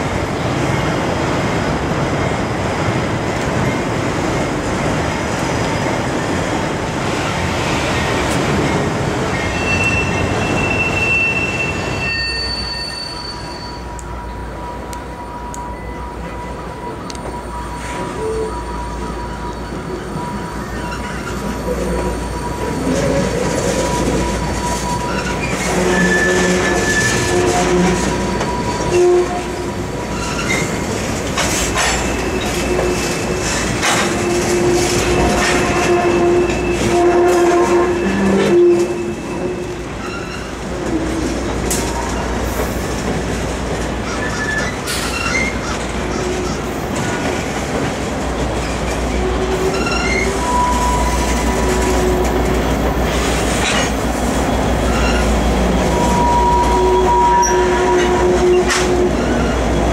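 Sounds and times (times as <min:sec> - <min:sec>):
freight cars rumbling on bridge: 0:00.0 - 0:12.0, 0:19.0 - 0:59.9
train wheels squealing: 0:09.3 - 0:14.4, 0:15.2 - 0:29.4, 0:30.0 - 0:41.1, 0:44.0 - 0:47.2, 0:48.6 - 0:53.9, 0:54.8 - 0:59.9
clicks and clacks: 0:31.2 - 0:35.7.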